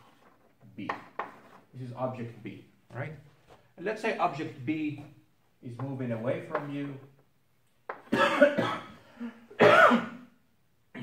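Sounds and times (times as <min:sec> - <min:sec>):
man coughing: 0:08.1 - 0:10.3.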